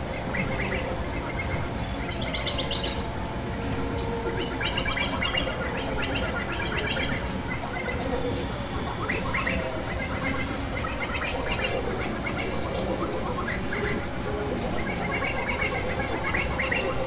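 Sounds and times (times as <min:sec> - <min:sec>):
noisy synthesizer drone: 0:00.0 - 0:17.0
thin high whistle-like tone: 0:08.0 - 0:12.5, 0:14.7 - 0:17.0.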